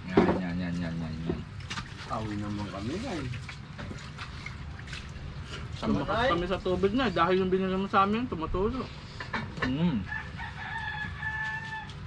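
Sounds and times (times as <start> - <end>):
rooster crowing: 9.9 - 12.0.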